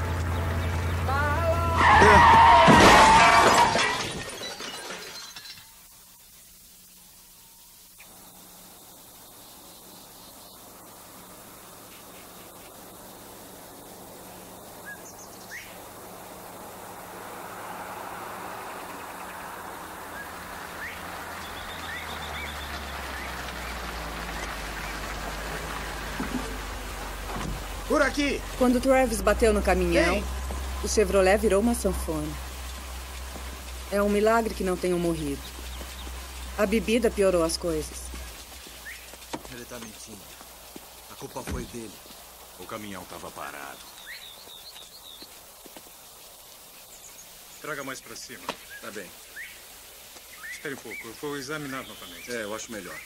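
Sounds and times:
car engine drone: 0:00.0 - 0:03.8, 0:08.0 - 0:43.7
car crash with crunching metal: 0:01.8 - 0:05.7
glass shattering: 0:02.2 - 0:05.8.

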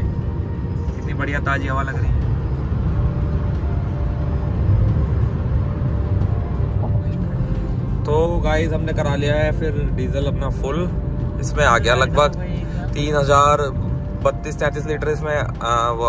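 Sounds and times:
road and engine rumble in car: 0:00.0 - 0:16.0.

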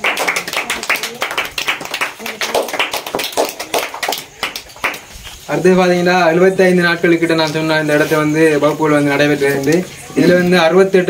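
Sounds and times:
group clapping: 0:00.0 - 0:05.5
faint voices: 0:00.0 - 0:11.0.

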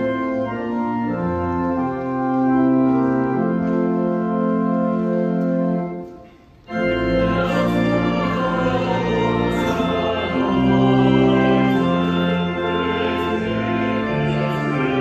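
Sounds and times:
church organ playing a hymn: 0:00.0 - 0:15.0.

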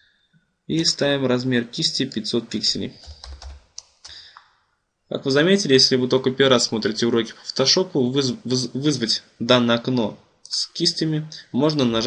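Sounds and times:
keyboard keystrokes: 0:03.0 - 0:04.2.

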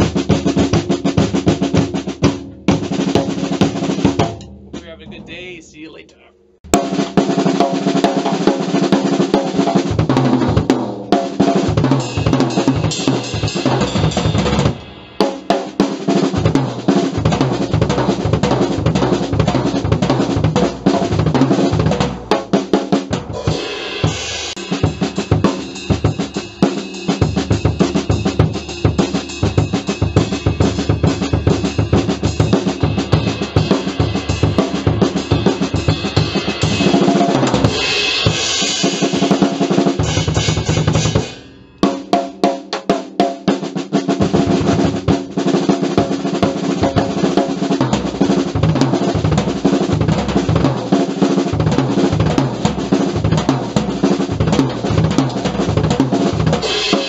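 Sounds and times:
acoustic drum kit groove: 0:00.0 - 0:57.0.

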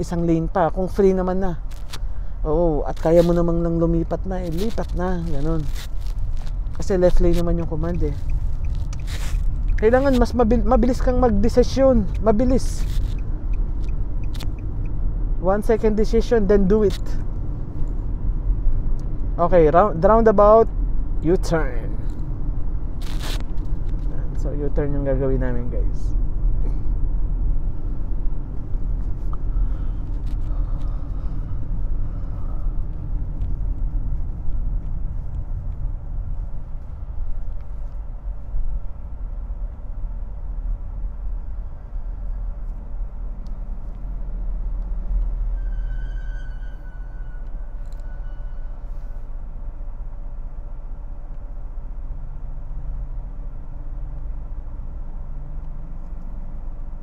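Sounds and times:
car interior road rumble: 0:00.0 - 0:57.0.

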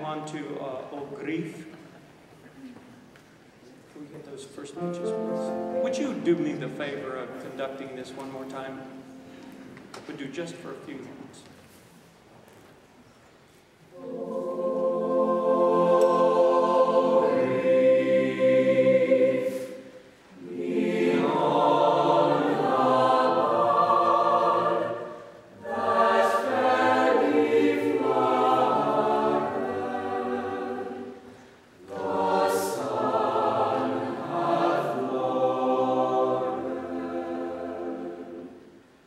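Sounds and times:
mixed choir singing: 0:13.9 - 0:39.0.

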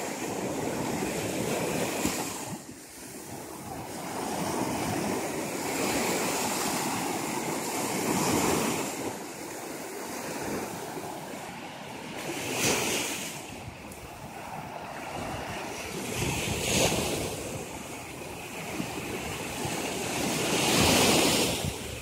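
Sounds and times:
surf washing up sandy beach: 0:00.0 - 0:22.0.

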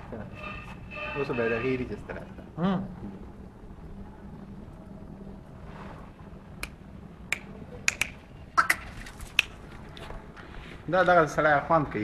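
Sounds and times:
sharp brief clicks: 0:06.6 - 0:09.6.

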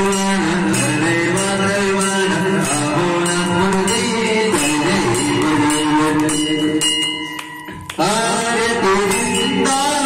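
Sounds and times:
brass bells ringing: 0:00.0 - 0:10.0
devotional music: 0:00.0 - 0:10.0.

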